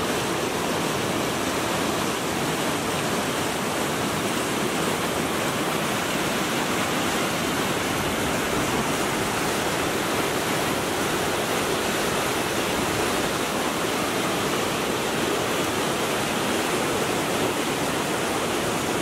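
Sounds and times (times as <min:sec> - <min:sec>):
river rapids rushing over rocks: 0:00.0 - 0:19.0.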